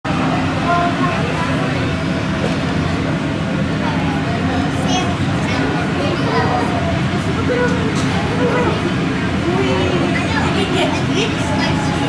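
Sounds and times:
visitors chattering: 0.0s - 12.0s.

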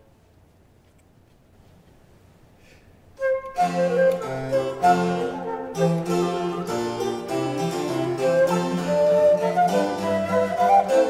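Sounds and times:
baroque flutes melody: 3.2s - 11.0s
harpsichord: 3.6s - 11.0s.

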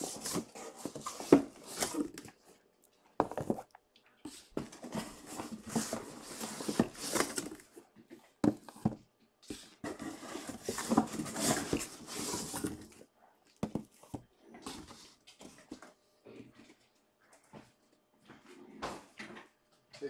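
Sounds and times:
cardboard boxes rustling and scraping: 0.0s - 2.5s, 3.2s - 3.7s, 4.3s - 15.9s.

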